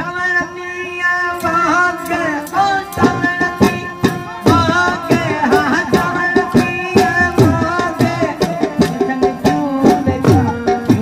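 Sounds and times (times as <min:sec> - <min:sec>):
harmonium notes: 0:00.0 - 0:11.0
man singing folk song: 0:00.0 - 0:11.0.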